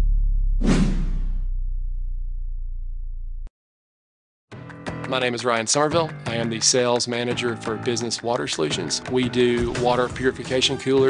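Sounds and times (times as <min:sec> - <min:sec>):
deep low rumble: 0:00.0 - 0:03.5
whoosh sound effect: 0:00.6 - 0:01.5.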